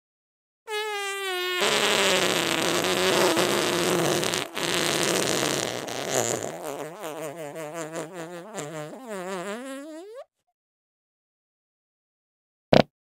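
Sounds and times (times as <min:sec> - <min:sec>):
low wobbling fart: 0:00.7 - 0:10.2
long rough fart: 0:00.7 - 0:10.3.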